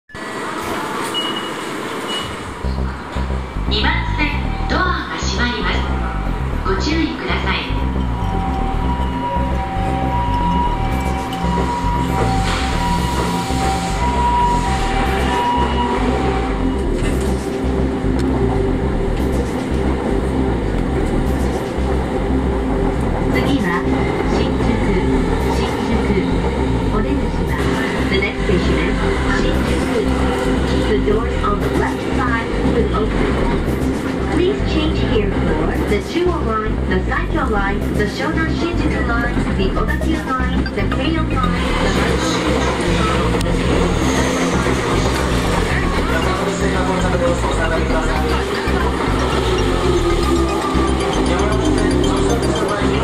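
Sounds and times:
station ambient noise: 0.1s - 53.0s
train rumbling on rails: 0.1s - 53.0s
voice: 3.7s - 7.9s, 23.3s - 53.0s.

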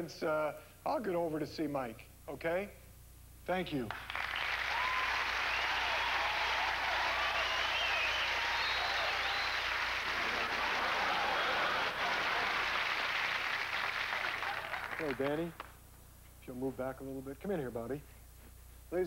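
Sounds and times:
audience applauding: 3.9s - 15.8s.

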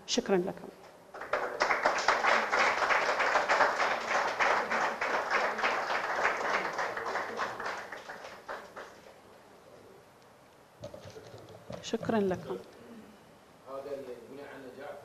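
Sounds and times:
audience applauding: 1.1s - 9.2s.

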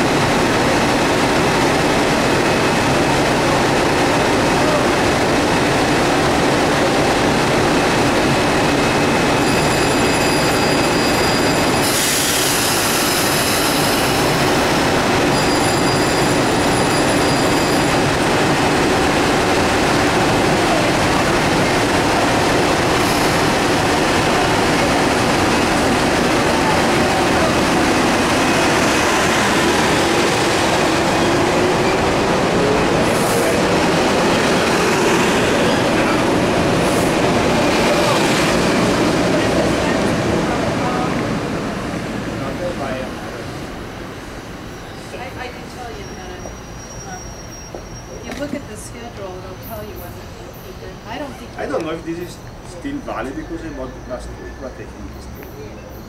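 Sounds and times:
train passing: 0.0s - 56.0s.

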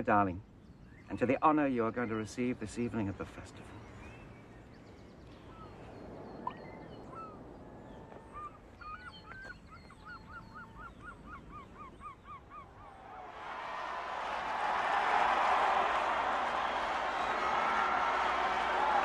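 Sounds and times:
birds chirping: 0.0s - 19.0s
large crowd noise: 12.8s - 19.0s.

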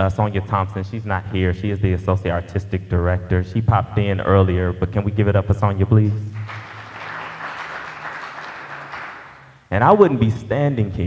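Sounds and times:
audience applauding: 6.4s - 9.6s.

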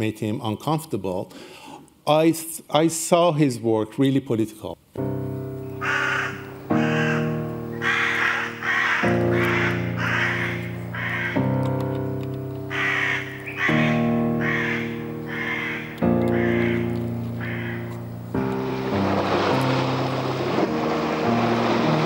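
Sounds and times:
sustained orchestral chords: 5.0s - 22.0s.

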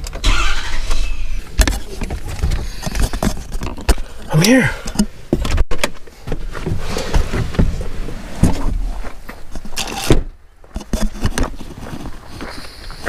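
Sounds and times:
clicks and clunks: 0.0s - 7.8s.

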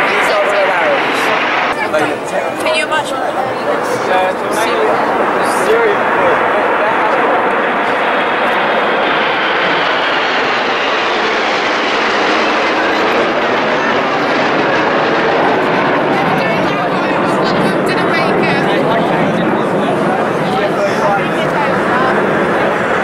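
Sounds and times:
crowd voices: 0.0s - 23.0s
jet engines overhead: 0.0s - 23.0s.

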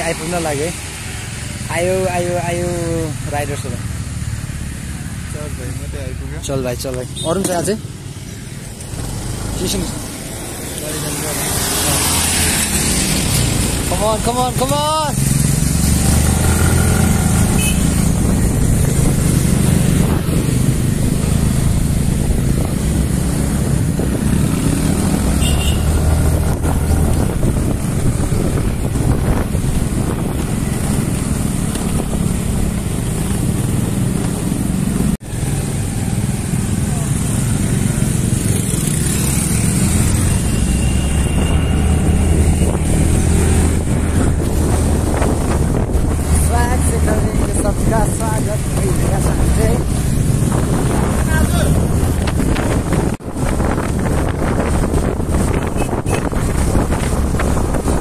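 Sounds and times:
road and wind noise: 0.0s - 58.0s
scooter engines droning: 0.0s - 58.0s.

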